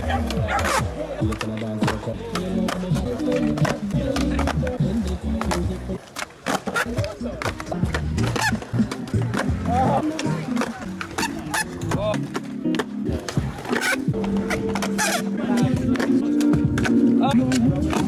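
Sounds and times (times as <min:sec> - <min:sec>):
background music: 0:00.0 - 0:06.0, 0:06.9 - 0:18.0
background voices: 0:00.0 - 0:12.4
skateboard clacking on concrete: 0:00.0 - 0:18.0.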